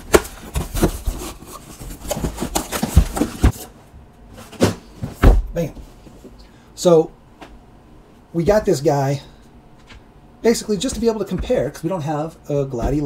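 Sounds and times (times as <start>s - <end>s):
cardboard rubbing and scraping: 0.0s - 3.7s.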